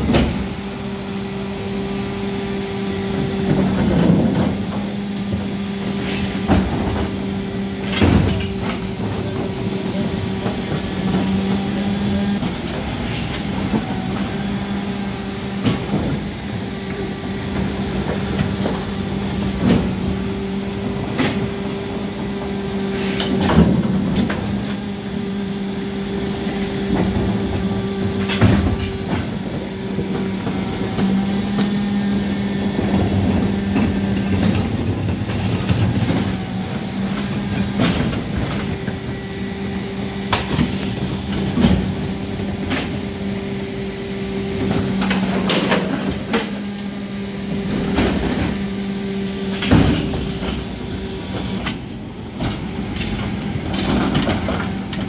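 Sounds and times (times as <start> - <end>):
bin lift knocks and clatters: 0.0 - 0.5, 3.4 - 11.6, 17.3 - 24.9, 26.5 - 43.6, 44.5 - 46.7, 47.5 - 48.7, 49.5 - 55.0
truck engine and hydraulics humming: 0.0 - 55.0.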